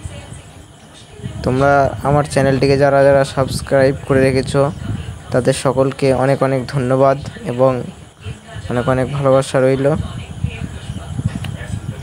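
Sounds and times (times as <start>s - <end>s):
man talking: 1.4s - 8.0s.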